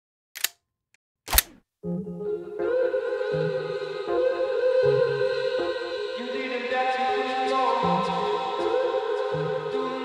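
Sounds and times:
sharp clicks: 0.4s - 0.6s, 1.3s - 1.6s
music: 1.8s - 10.0s
person singing: 1.9s - 10.0s.

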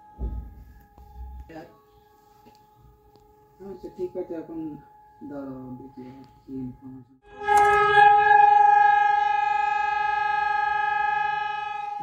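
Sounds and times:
air-raid siren steady tone: 0.0s - 12.0s.

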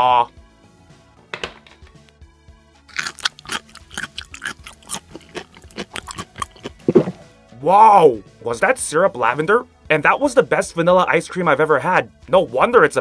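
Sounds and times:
soft background music: 0.0s - 13.0s
chewing and crunching: 2.9s - 7.3s.

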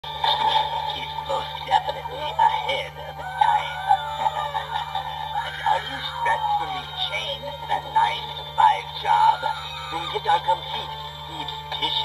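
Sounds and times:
music with wavering melody: 0.0s - 12.0s
steady low hum: 0.0s - 12.0s.

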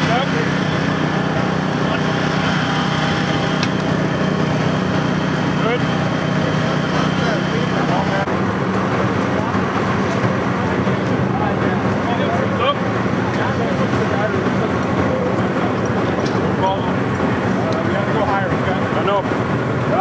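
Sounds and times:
engine droning: 0.0s - 20.0s.

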